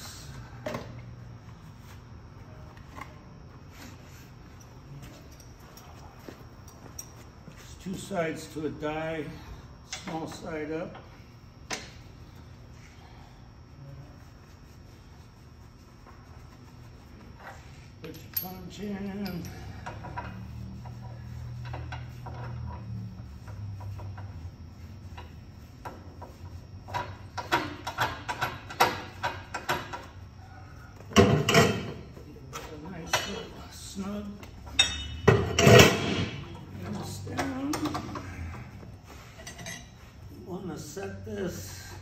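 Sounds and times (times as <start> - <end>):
steel tooling clinking: 18.0 - 20.4, 34.7 - 36.2.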